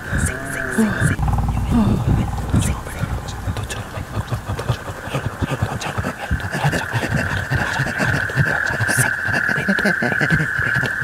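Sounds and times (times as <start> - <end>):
low murmuring and growling: 0.0 - 11.0.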